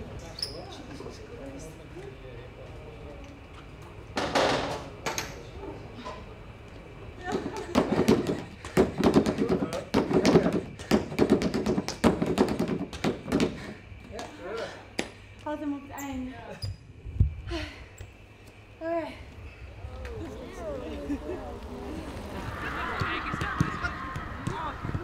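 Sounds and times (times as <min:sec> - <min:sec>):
trainers tapping on plastic step: 0:07.3 - 0:13.6
indistinct voices: 0:18.8 - 0:25.0.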